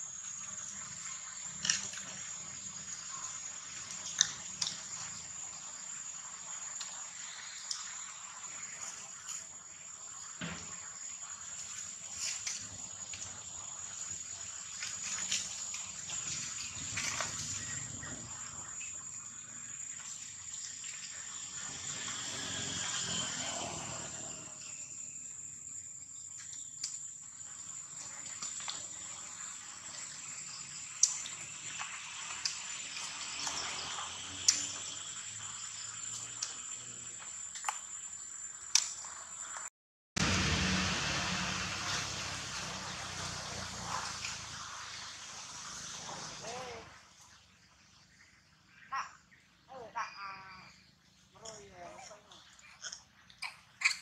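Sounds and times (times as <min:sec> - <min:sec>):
outdoor background hiss: 0:00.0 - 0:54.0
thin high whine: 0:20.6 - 0:25.8.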